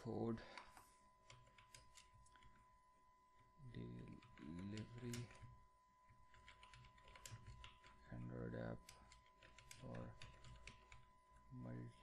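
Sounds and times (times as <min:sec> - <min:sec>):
keyboard typing: 0:00.5 - 0:02.6, 0:03.9 - 0:05.5, 0:06.1 - 0:11.1.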